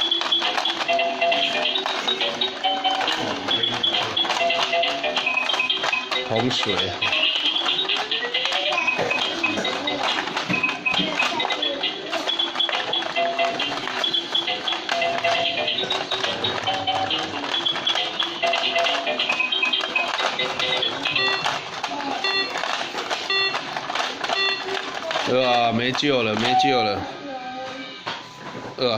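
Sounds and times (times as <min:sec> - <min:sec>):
toy electronic tune: 0:00.0 - 0:27.1.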